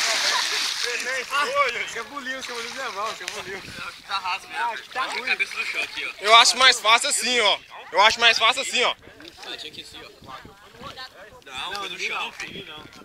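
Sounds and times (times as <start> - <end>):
big splash into water: 0.0 - 1.3.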